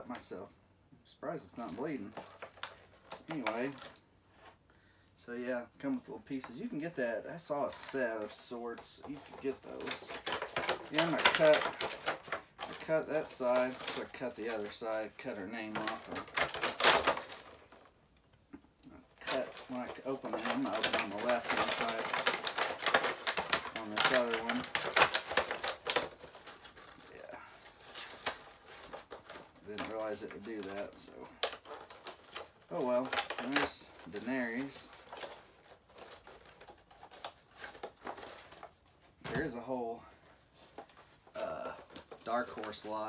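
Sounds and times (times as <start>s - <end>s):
plastic packaging rustling: 1.4s - 4.6s, 5.8s - 43.0s
man speaking: 3.2s - 3.8s, 5.2s - 10.2s, 10.9s - 11.9s, 12.7s - 16.3s, 18.9s - 22.4s, 23.7s - 24.9s, 29.6s - 31.4s, 32.7s - 35.0s, 39.2s - 40.1s, 41.3s - 43.0s.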